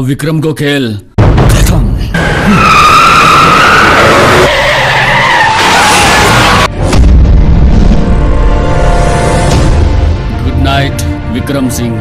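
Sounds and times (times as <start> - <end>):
car tyres screeching: 2.2 - 6.7.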